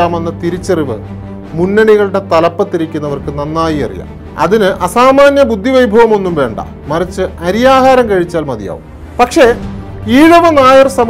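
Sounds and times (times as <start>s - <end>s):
background music: 0.0s - 11.0s
man speaking: 0.0s - 11.0s.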